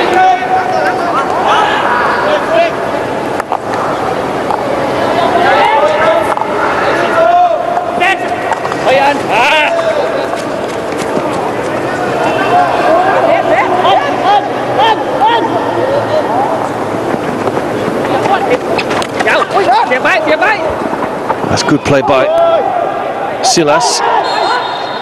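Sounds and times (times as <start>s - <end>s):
players shouting and calling: 0.0s - 25.0s.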